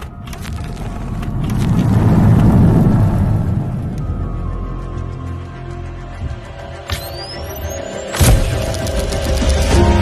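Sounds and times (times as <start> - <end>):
low rumbling swell: 0.7 - 5.7.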